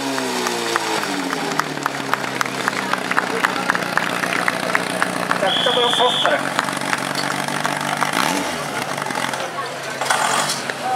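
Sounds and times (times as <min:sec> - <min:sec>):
voices: 0:01.2 - 0:10.9.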